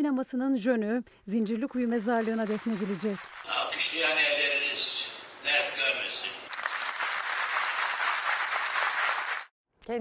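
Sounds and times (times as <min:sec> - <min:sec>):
audience applauding: 0:01.8 - 0:04.7, 0:05.5 - 0:09.5.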